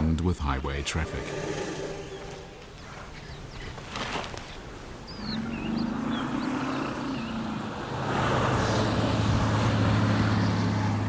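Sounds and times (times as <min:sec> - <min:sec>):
road noise: 0:00.0 - 0:11.0
bird chirps: 0:00.4 - 0:07.4
vehicle engine humming: 0:07.0 - 0:11.0.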